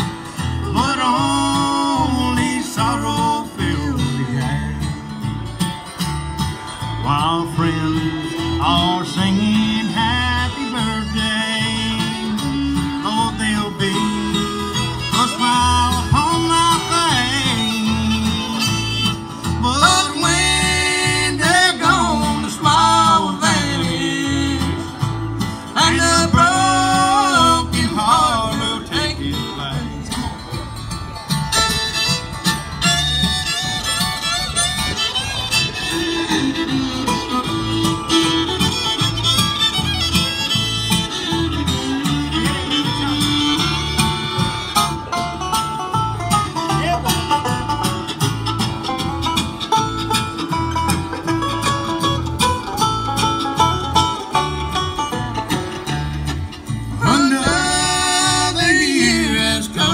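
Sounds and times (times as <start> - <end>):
acoustic guitar: 0.0 - 59.9
banjo: 0.0 - 59.9
fiddle: 0.0 - 59.9
steady bass beat: 0.0 - 59.9.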